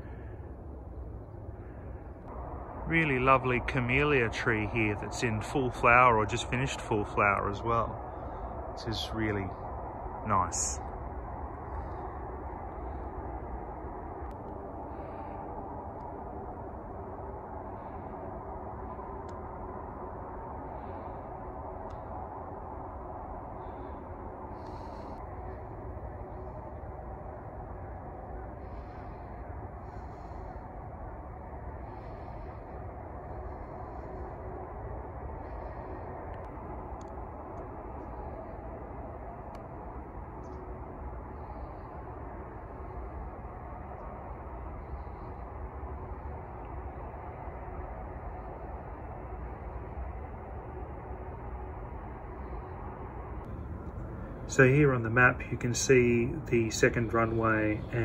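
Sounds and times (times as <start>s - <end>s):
outdoor background hum: 0.0s - 58.0s.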